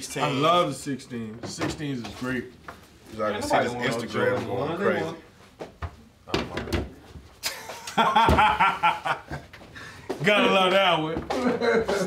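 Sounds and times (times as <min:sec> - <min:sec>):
men laughing: 0:07.4 - 0:10.1, 0:11.3 - 0:12.0.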